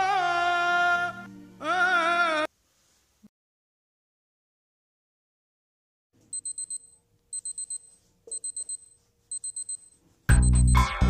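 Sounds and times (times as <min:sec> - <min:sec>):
alarm clock beeping: 0:06.4 - 0:11.0.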